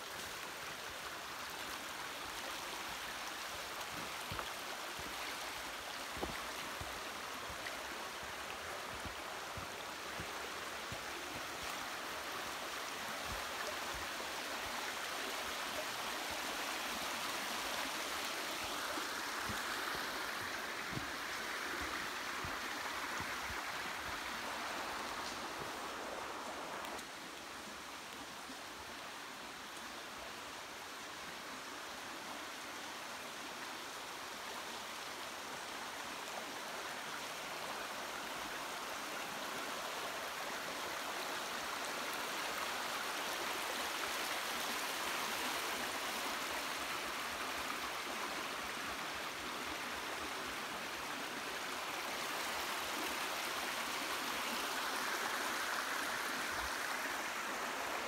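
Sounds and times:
creek running over stones: 0:00.0 - 0:58.0.

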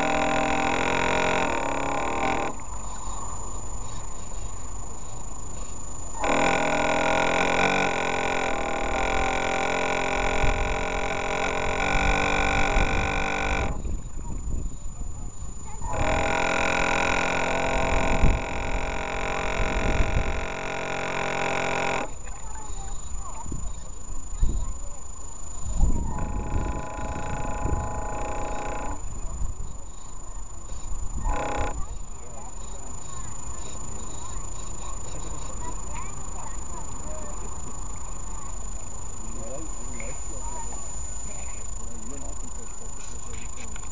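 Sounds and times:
model boat motor whining: 0:00.0 - 0:03.0, 0:05.6 - 0:14.3, 0:15.3 - 0:43.9
wind noise: 0:08.4 - 0:20.8, 0:22.0 - 0:32.2.

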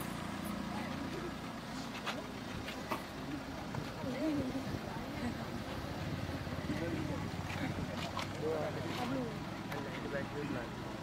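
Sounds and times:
people talking: 0:00.4 - 0:10.8.

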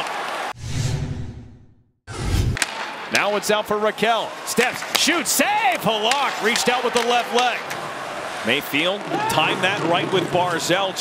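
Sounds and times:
whoosh transition with deep rumble: 0:00.6 - 0:02.6
arena crowd noise: 0:03.1 - 0:11.0.

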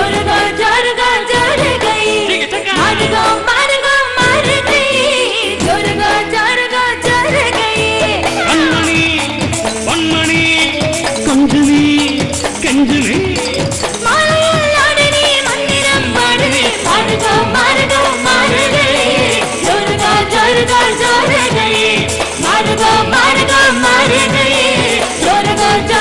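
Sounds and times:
live band with steady beat: 0:00.0 - 0:26.0
man and woman singing duet: 0:00.0 - 0:26.0.

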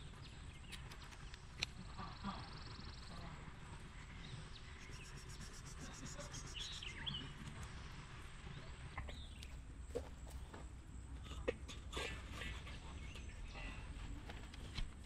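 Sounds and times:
bird chirping: 0:04.0 - 0:07.4.

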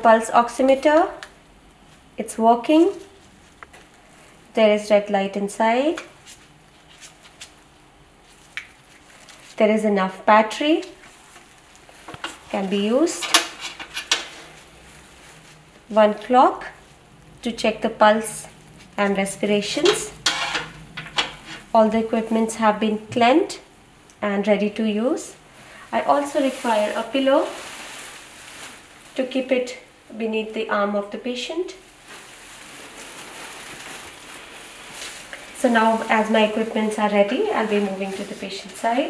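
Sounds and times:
woman speaking: 0:00.0 - 0:01.2, 0:02.2 - 0:03.2, 0:04.5 - 0:06.1, 0:09.6 - 0:11.0, 0:12.5 - 0:13.3, 0:15.9 - 0:16.8, 0:17.4 - 0:20.2, 0:21.7 - 0:27.6, 0:29.2 - 0:31.8, 0:35.6 - 0:39.0
faint steady hum: 0:00.0 - 0:39.0
plastic apron crackling: 0:00.3 - 0:23.6, 0:25.1 - 0:29.9, 0:31.7 - 0:39.0
pillow rustling: 0:25.7 - 0:29.4, 0:31.9 - 0:39.0.

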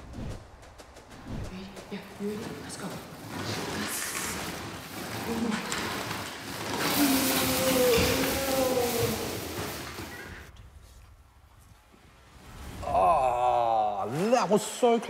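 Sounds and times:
broom sweeping wooden floor: 0:00.0 - 0:11.1
pot sliding on floor: 0:02.6 - 0:10.5
drawn-out vocal cry: 0:06.7 - 0:09.8.

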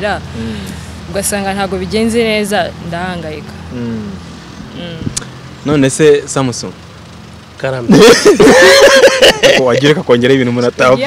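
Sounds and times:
low steady rumble: 0:00.0 - 0:11.0.

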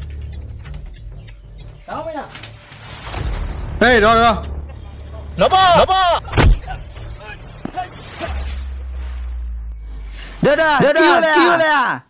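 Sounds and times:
deep boom: 0:02.9 - 0:10.0.

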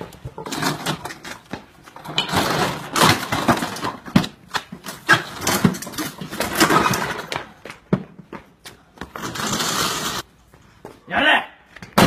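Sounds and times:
scooter being knocked and smashed: 0:02.0 - 0:08.1.

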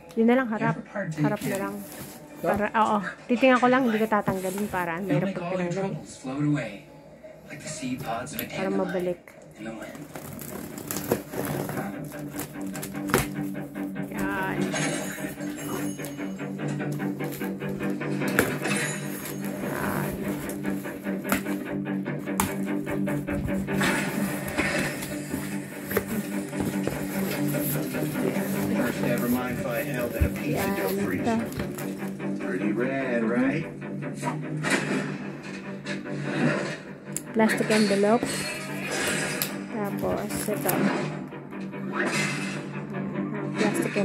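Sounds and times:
background music with held notes: 0:00.0 - 0:44.0
cardboard box being opened: 0:09.8 - 0:13.4, 0:18.3 - 0:21.6, 0:23.2 - 0:32.0
scissors cutting packing tape: 0:10.1 - 0:13.5, 0:39.4 - 0:40.8.

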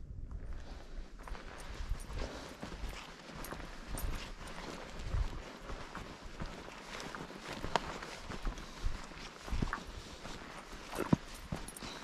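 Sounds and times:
footsteps on dirt trail: 0:00.2 - 0:12.0.

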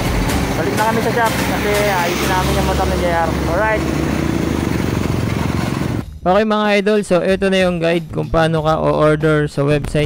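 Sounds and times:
motorcycle engine running: 0:00.0 - 0:06.0.

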